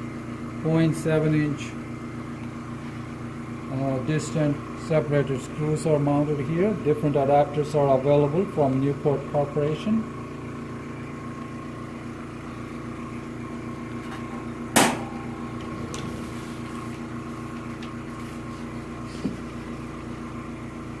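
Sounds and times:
machine hum: 0.0s - 21.0s
metal lid clanking shut: 14.8s - 16.0s.

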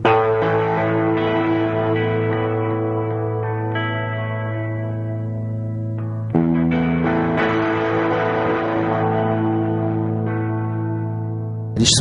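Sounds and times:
guitar chords: 0.0s - 12.0s.

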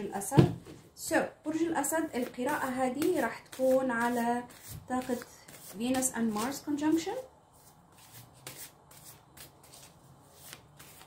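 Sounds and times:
cards shuffled by hand: 8.0s - 11.0s.

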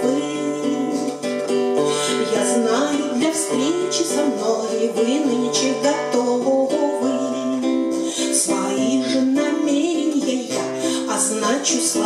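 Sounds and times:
strummed acoustic guitar: 0.0s - 12.0s
woman singing: 0.0s - 12.0s.

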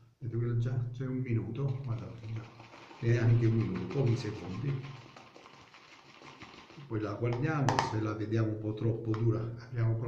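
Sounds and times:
shaving brush whisking lather: 1.7s - 7.0s.

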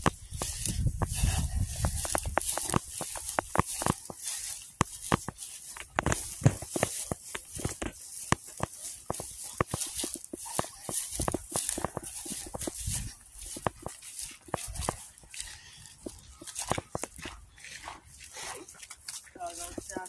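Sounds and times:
footsteps on gravel: 0.0s - 20.0s
footsteps through dry grass: 0.0s - 20.0s.

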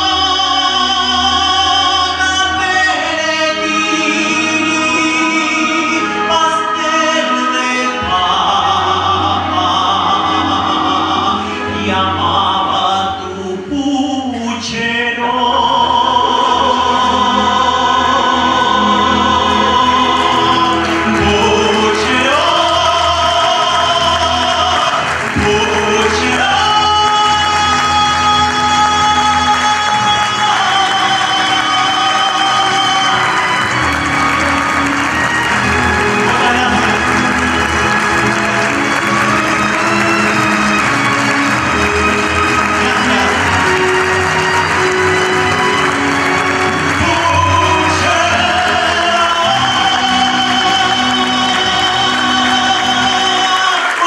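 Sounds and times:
band accompaniment: 0.0s - 54.0s
male singer sustained notes: 0.0s - 54.0s
audience applause: 15.8s - 54.0s.

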